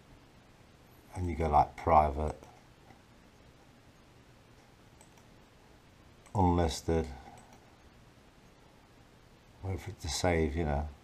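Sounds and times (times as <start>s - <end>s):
computer mouse click: 5.0s - 5.3s, 7.2s - 7.7s.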